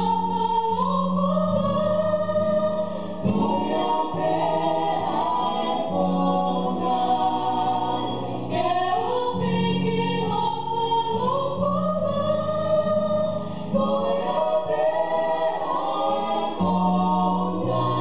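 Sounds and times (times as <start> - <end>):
women singing in close harmony: 0.0 - 18.0.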